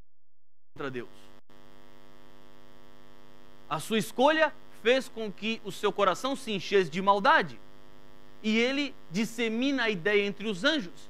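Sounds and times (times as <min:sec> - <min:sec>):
man speaking: 0:00.8 - 0:01.3, 0:03.7 - 0:07.6, 0:08.4 - 0:11.0
electrical mains hum: 0:00.8 - 0:11.0.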